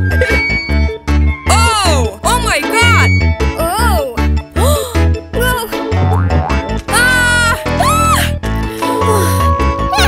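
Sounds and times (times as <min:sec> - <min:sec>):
cartoon music with strong bass: 0:00.0 - 0:10.0.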